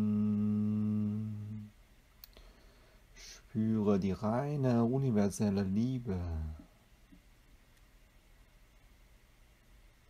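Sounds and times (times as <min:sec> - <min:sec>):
faint click: 0:02.2 - 0:02.5, 0:07.1 - 0:07.9
person speaking: 0:03.2 - 0:06.7.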